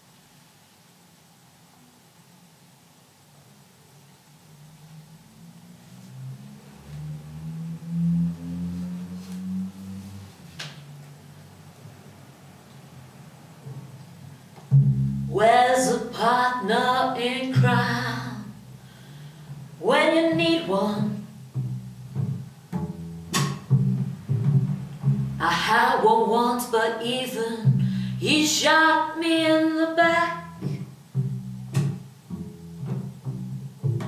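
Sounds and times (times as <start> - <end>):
double bass low notes: 4.5 - 12.4, 13.3 - 26.5, 27.3 - 34.0.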